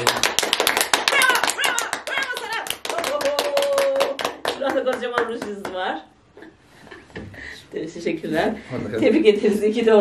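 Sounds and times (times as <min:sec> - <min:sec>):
people clapping fast: 0:00.0 - 0:05.9
people cheering: 0:01.0 - 0:04.3.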